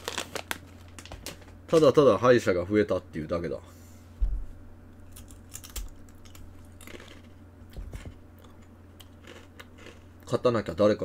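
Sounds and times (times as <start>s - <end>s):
low thumps and knocks: 4.2s - 4.6s.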